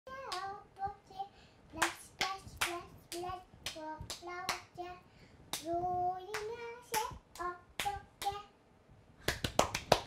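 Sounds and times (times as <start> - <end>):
hand claps: 0.3 - 0.5, 1.8 - 4.7, 6.3 - 8.4, 9.2 - 10.0.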